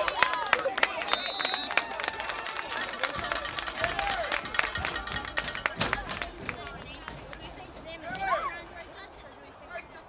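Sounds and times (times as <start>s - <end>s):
indistinct voices: 1.0s - 10.0s.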